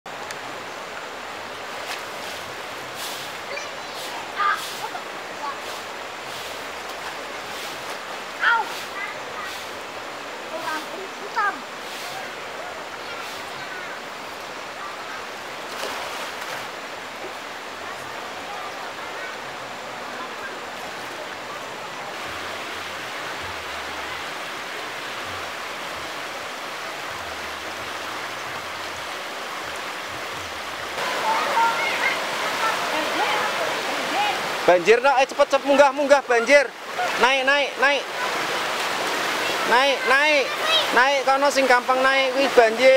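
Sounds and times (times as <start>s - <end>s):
river rushing over rocks: 0.1s - 42.9s
voices: 3.4s - 6.1s, 8.3s - 15.9s, 17.1s - 25.1s, 31.0s - 42.9s.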